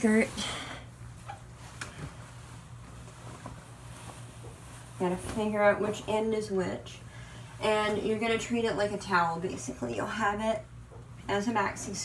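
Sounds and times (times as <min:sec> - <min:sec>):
low steady hum: 0:00.0 - 0:12.0
wet laundry rustling: 0:00.0 - 0:12.0.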